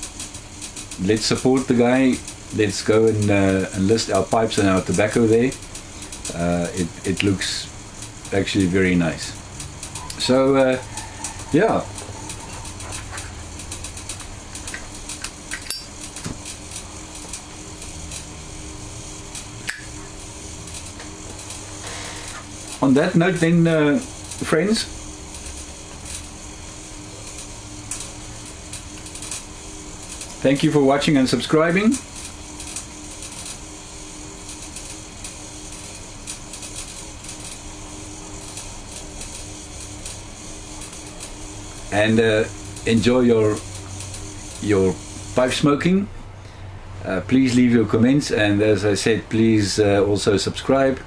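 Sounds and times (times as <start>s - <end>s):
low room hum: 0.0s - 51.0s
man puffing on tobacco pipe: 21.6s - 22.5s.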